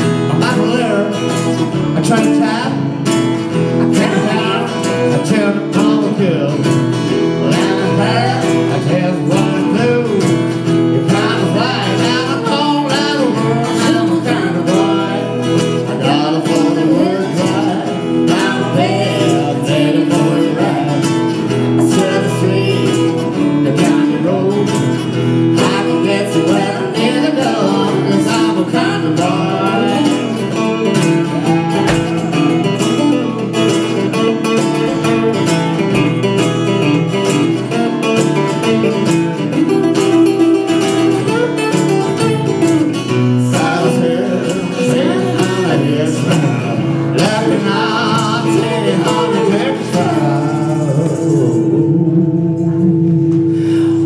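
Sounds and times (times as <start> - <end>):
person singing: 0.0 - 36.3, 38.7 - 54.0
acoustic guitars strummed: 0.0 - 54.0.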